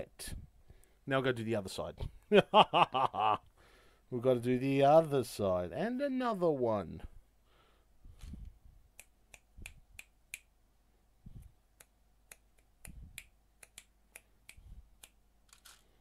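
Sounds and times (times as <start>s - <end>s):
plastic pieces clicking and rattling: 15.5s - 15.9s.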